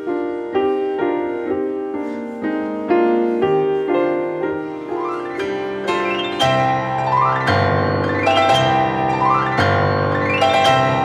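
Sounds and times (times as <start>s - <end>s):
piano playing slow chords: 0.0s - 11.0s.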